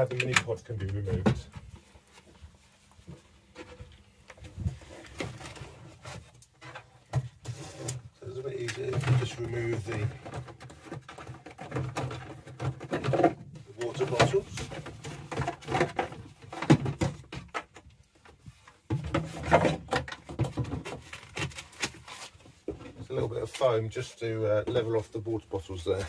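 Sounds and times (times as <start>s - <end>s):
man speaking: 0.0s - 1.5s, 8.2s - 10.2s, 13.7s - 14.7s, 23.0s - 26.0s
plastic containers knocking: 8.7s - 17.8s.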